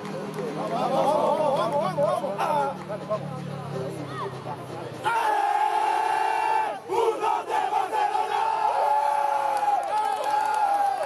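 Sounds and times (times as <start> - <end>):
men shouting in unison: 5.0 - 9.4.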